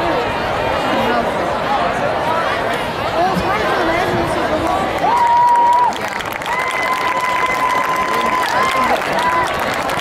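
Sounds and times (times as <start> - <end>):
crowd applauding: 4.6 - 10.0
high steady cheer or whistle: 5.0 - 10.0.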